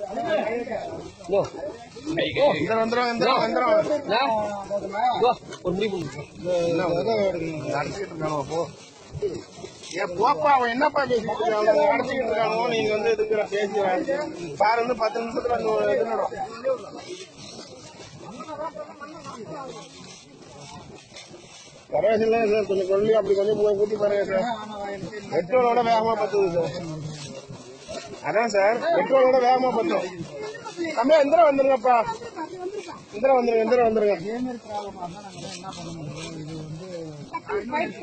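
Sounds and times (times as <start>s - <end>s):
gas escaping from pipeline hissing: 0.0s - 38.0s
voices talking: 0.0s - 38.0s.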